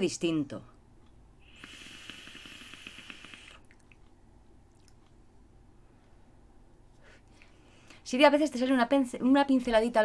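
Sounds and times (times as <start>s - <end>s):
electronic cigarette air hissing: 1.4s - 3.6s.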